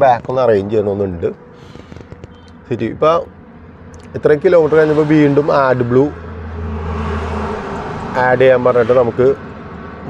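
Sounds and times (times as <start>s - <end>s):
engine low hum: 0.0s - 10.0s.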